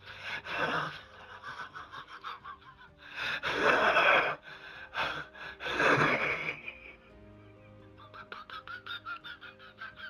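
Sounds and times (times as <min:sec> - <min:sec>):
man laughing wheezing: 0:00.4 - 0:10.0.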